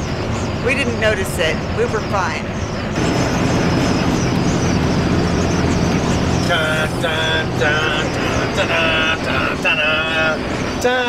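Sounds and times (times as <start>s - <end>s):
bus engine drone: 0.0s - 11.0s
road and wind noise: 0.0s - 11.0s.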